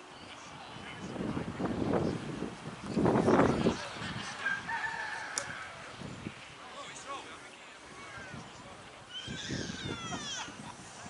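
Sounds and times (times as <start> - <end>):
outdoor background noise: 0.0 - 11.0
distant high-pitched shouting: 9.0 - 10.5.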